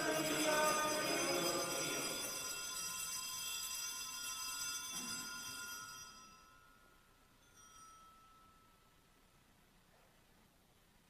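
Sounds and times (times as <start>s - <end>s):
altar bells ringing: 0.0s - 9.3s.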